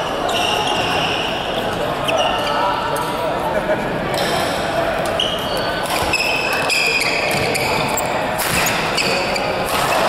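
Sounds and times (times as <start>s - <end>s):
shoes squeaking on court floor: 0.0s - 3.2s, 5.0s - 10.0s
voices in echoing hall: 0.0s - 10.0s.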